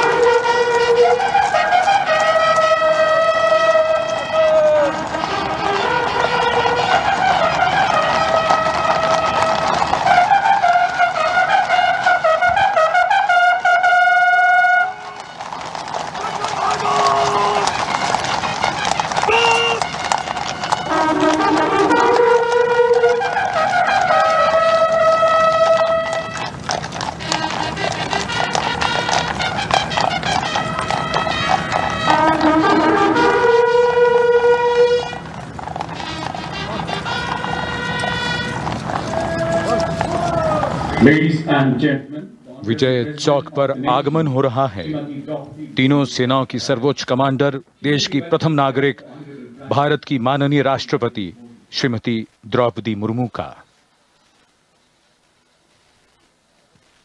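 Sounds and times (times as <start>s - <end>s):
horses' hooves clip-clopping: 0.0s - 41.3s, 42.7s - 57.0s
military brass band trumpets: 0.0s - 41.8s
sustained brass notes: 0.0s - 41.8s.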